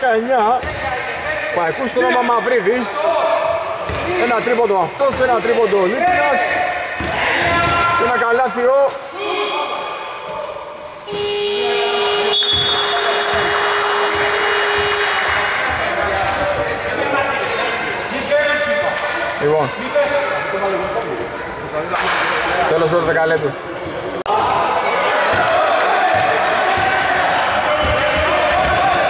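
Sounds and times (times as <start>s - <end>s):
game horn buzzing: 11.1s - 15.3s
voices shouting: 24.3s - 29.0s.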